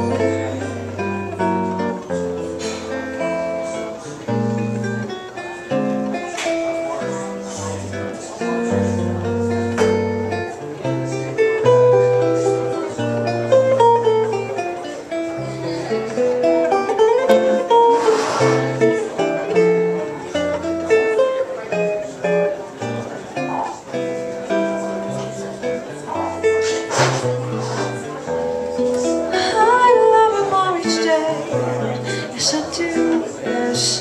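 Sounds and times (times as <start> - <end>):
solo jazz guitar: 0.0 - 34.0.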